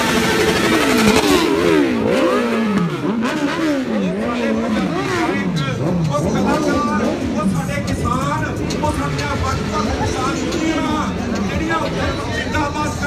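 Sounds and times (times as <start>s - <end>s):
motorcycle engine revving: 0.0s - 13.0s.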